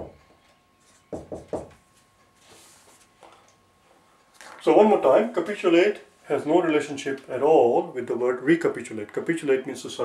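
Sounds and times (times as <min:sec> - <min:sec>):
marker tapping on whiteboard: 0:01.1 - 0:01.8
faint brushing: 0:01.9 - 0:03.2.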